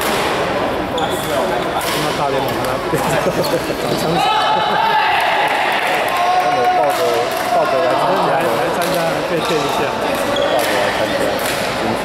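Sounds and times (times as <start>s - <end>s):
people chatting: 0.1s - 12.0s
shoe squeak on floor: 1.0s - 1.7s, 9.4s - 11.4s.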